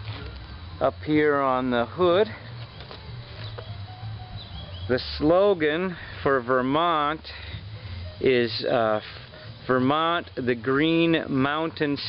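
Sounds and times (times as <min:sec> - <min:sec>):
low steady hum: 0:00.0 - 0:12.0
faint bird chirps: 0:03.4 - 0:05.0.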